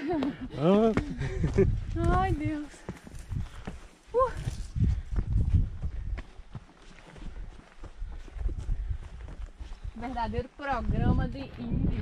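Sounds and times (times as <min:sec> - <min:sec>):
footsteps on dirt trail: 0:00.0 - 0:12.0.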